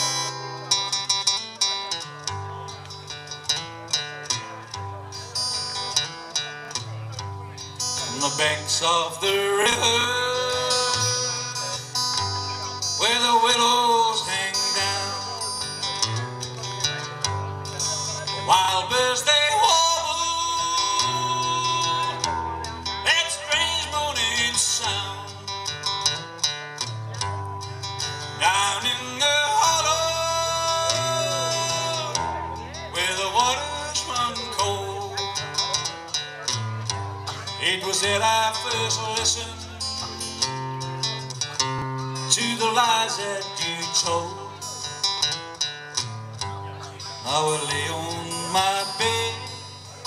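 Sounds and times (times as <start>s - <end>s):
acoustic guitar: 0.0s - 50.0s
man singing country song: 0.0s - 50.0s.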